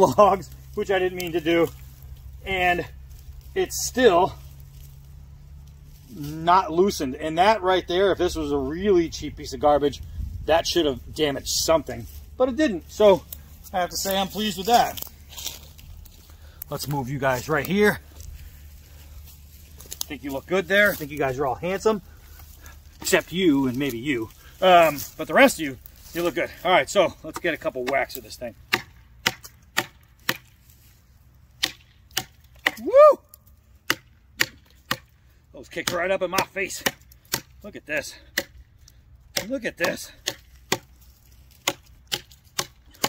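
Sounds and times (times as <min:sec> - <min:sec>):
knife chopping into log: 0:28.7 - 0:30.5, 0:31.6 - 0:32.8, 0:35.8 - 0:37.6, 0:38.3 - 0:38.6, 0:39.3 - 0:40.9, 0:41.5 - 0:43.0.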